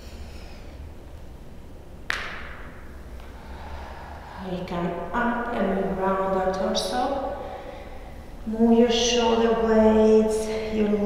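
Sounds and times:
low steady hum: 0.0 - 11.0
forceful exhale: 3.2 - 4.4.

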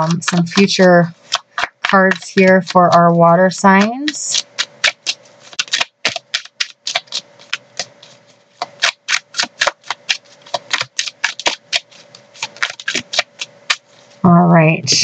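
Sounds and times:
cards being shuffled: 0.0 - 2.7, 4.0 - 13.9.

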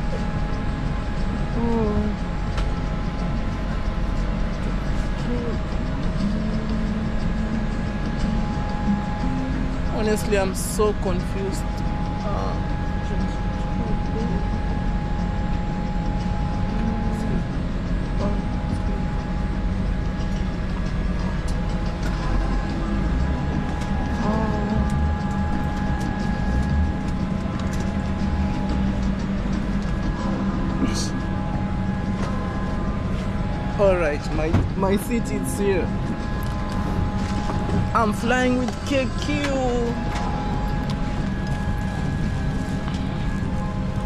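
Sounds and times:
air-conditioning hum and whine: 0.0 - 44.0.

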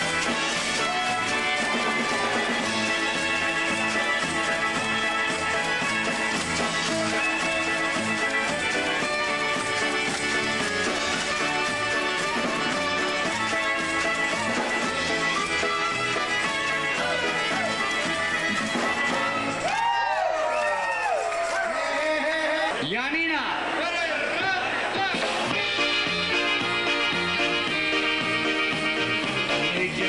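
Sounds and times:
polka band playing: 0.0 - 19.8, 24.4 - 30.0.

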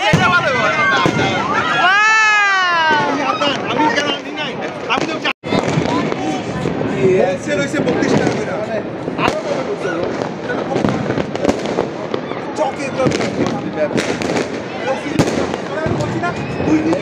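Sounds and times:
fireworks bangs and crackles: 0.0 - 17.0
people's voices: 0.0 - 17.0.

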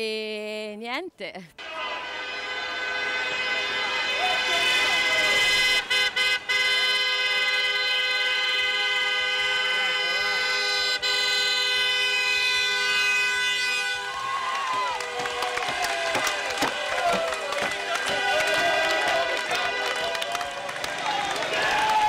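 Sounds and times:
people shouting and cheering: 1.6 - 5.6, 14.0 - 22.0
car horns honking: 1.6 - 21.8.

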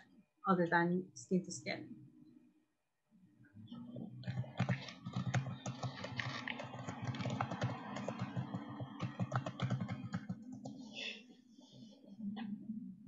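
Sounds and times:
typing on computer keyboard: 4.2 - 10.8.

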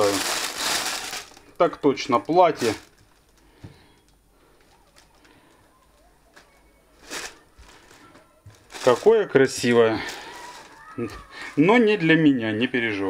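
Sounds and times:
fabric rustling: 0.0 - 1.5, 6.3 - 11.3.

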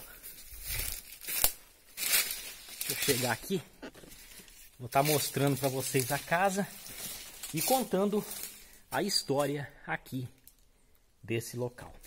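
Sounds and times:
footsteps crunching dry leaves: 0.0 - 9.6.

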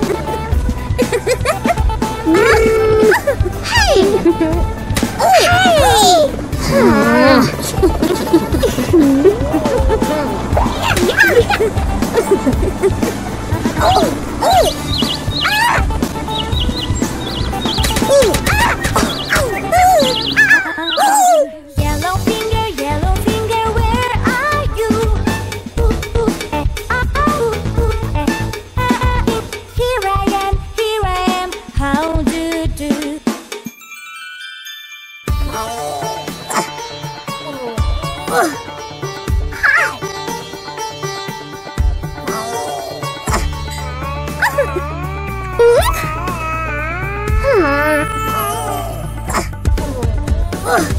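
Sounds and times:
upbeat cartoon music: 0.0 - 50.9
baby cartoon character crying: 1.4 - 4.6, 5.2 - 11.6, 13.8 - 16.0, 17.6 - 21.7, 39.5 - 40.0, 42.3 - 50.9
high warbling chirps: 13.2 - 21.6.

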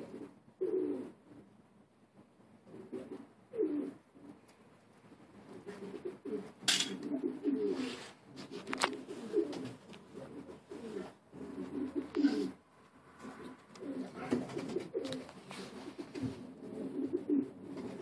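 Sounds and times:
pigeons cooing: 0.0 - 1.6, 2.6 - 4.4, 5.3 - 12.6, 13.2 - 18.0.

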